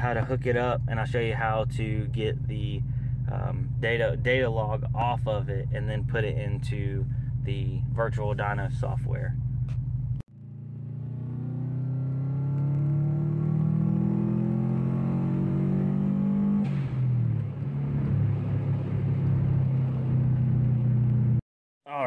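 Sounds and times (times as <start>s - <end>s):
turbocharged engine accelerating: 10.3s - 21.4s.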